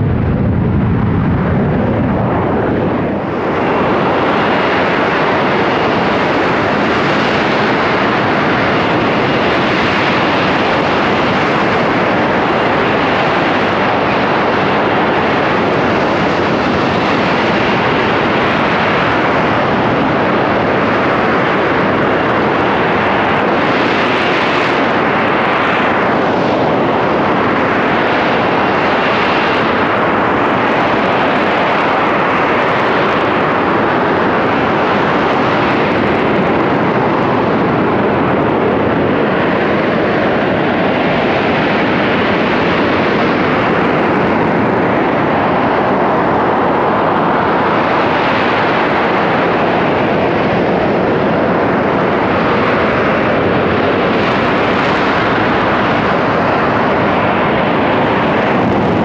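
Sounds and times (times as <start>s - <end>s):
jet hovering: 0.0s - 5.4s, 50.0s - 59.0s.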